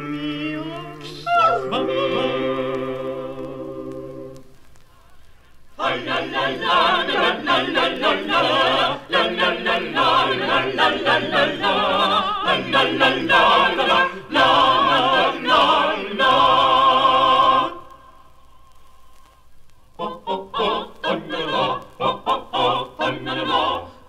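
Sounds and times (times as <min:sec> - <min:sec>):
choir singing a cappella: 0:00.0 - 0:04.5, 0:05.8 - 0:18.2, 0:20.0 - 0:24.0.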